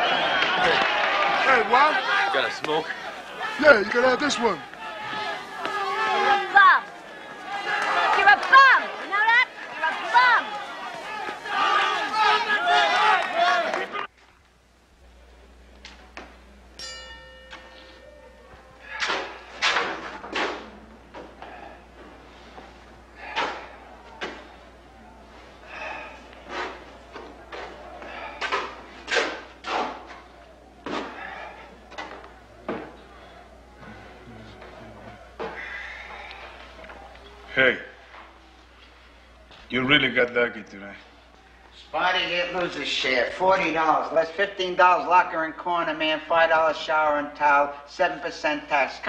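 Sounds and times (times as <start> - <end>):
loud shouted call: 0.0 - 14.1
men talking and shouting: 0.0 - 14.1, 15.4 - 49.0
low steady hum: 14.0 - 44.1.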